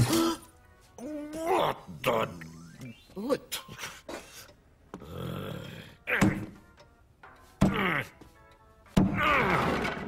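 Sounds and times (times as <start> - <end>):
cartoon thunks: 6.1 - 6.6.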